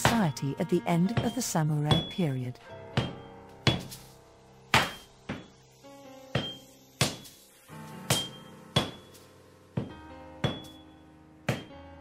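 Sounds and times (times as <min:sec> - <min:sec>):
soft background music: 0:00.0 - 0:12.0
hammer striking anvil with ring: 0:01.2 - 0:02.4, 0:03.0 - 0:04.0, 0:04.7 - 0:05.5, 0:06.3 - 0:07.3, 0:08.1 - 0:09.2, 0:09.8 - 0:10.8, 0:11.5 - 0:11.7.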